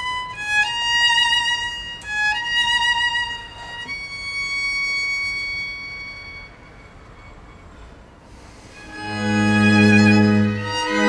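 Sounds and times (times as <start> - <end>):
violin holding high note: 0.0 - 11.0.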